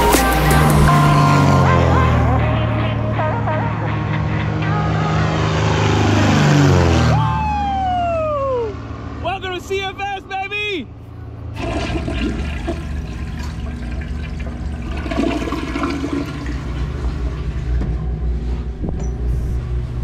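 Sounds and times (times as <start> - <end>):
propeller plane passing overhead: 0.8 - 20.0
person calling out whoops: 7.1 - 8.8.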